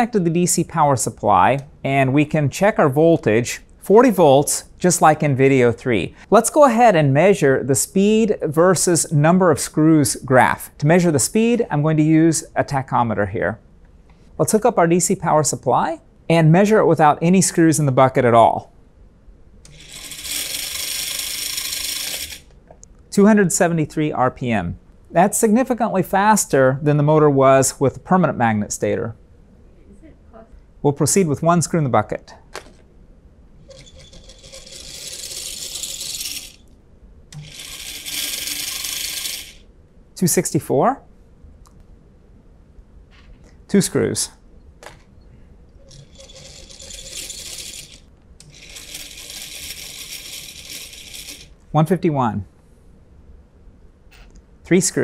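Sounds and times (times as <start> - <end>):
electric motor running: 19.7 - 22.5, 33.8 - 36.6, 37.4 - 39.6, 45.9 - 51.6.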